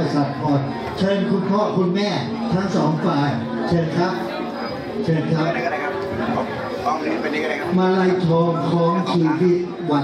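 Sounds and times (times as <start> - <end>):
chatter of many people: 0.0 - 10.0
man speaking: 5.0 - 10.0.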